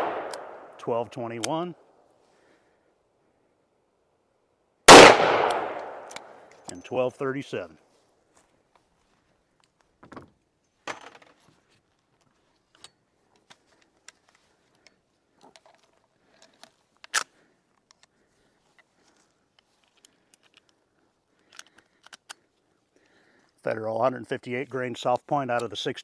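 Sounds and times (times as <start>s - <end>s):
metallic clicks of guns handled: 0.0s - 0.5s, 5.3s - 7.1s, 9.5s - 24.4s, 25.1s - 25.9s.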